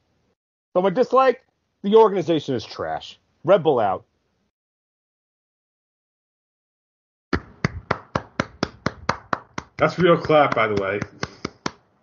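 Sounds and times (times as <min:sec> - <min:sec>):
hands clapping: 0:07.4 - 0:11.9.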